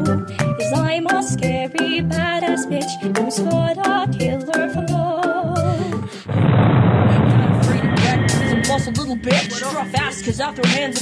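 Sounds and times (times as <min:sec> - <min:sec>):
sharp percussion hits: 0:06.4 - 0:11.0
person rapping: 0:07.2 - 0:11.0
bass-heavy hip-hop beat: 0:07.5 - 0:11.0.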